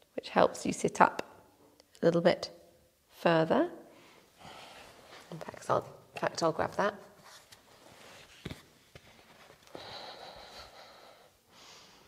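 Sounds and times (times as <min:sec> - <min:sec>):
close breathing: 0:03.9 - 0:05.3, 0:09.4 - 0:12.0.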